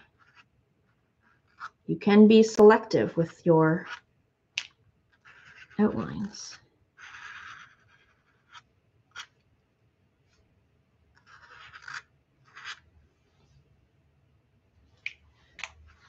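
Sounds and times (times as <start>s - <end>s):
pen scratching on paper: 0.0s - 0.5s, 1.2s - 1.8s, 5.1s - 6.4s, 7.0s - 9.3s, 11.2s - 12.8s.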